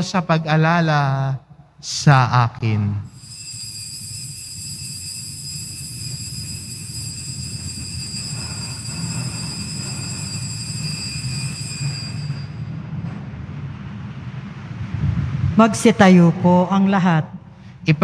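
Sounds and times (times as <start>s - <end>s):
altar bells ringing: 3.1s - 12.9s
low rumble: 12.4s - 17.6s.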